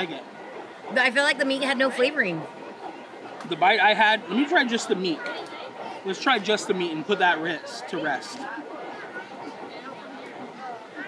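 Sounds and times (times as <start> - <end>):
babble of voices: 0.0 - 11.0.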